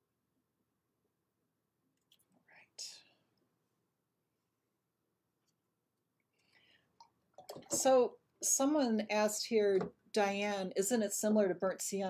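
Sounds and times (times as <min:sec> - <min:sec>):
short breath: 0:06.4 - 0:07.0.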